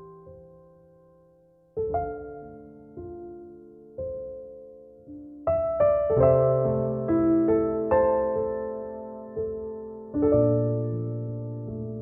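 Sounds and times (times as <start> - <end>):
slow quiet piano music: 0.0 - 12.0.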